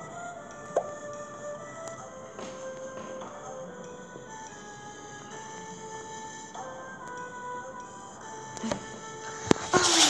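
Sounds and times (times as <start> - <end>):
background music with held notes: 0.0 - 10.0
hand rustling against device: 8.6 - 10.0.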